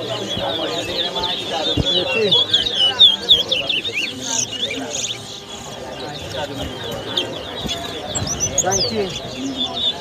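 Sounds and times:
finch singing: 0:00.0 - 0:10.0.

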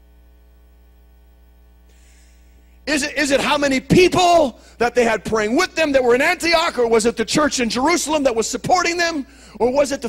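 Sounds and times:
electrical mains hum: 0:00.0 - 0:10.0
man speaking: 0:02.9 - 0:10.0.

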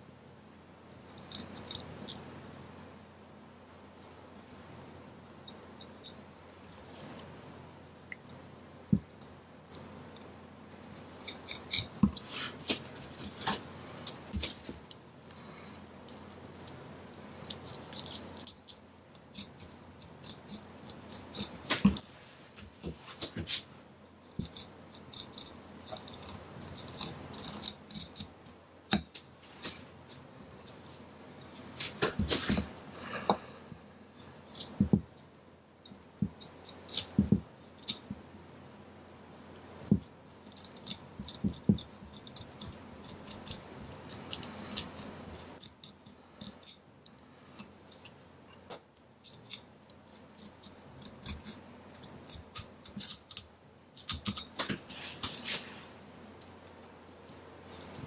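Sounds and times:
knife scraping fish bones: 0:15.3 - 0:22.1, 0:24.3 - 0:28.4, 0:39.8 - 0:46.8, 0:49.2 - 0:55.7.

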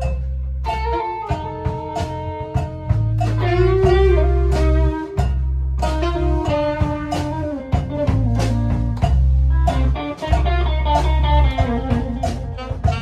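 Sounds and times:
drum kit beat: 0:00.0 - 0:13.0
electric guitar: 0:00.0 - 0:13.0
sustained bass notes: 0:00.0 - 0:13.0.

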